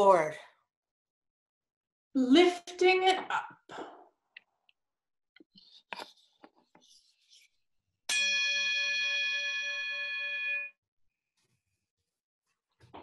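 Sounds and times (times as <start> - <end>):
metal bell struck with wooden stick: 8.1 - 10.7.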